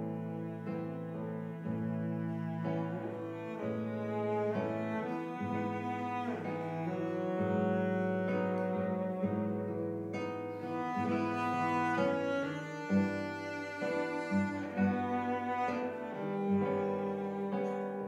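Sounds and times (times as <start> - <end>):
bowed cello melody: 0.0 - 18.0
plucked classical guitar: 0.0 - 18.0.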